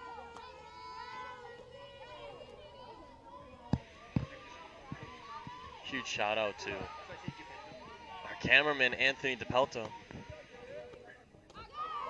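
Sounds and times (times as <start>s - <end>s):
faint voices calling out: 0.0s - 12.0s.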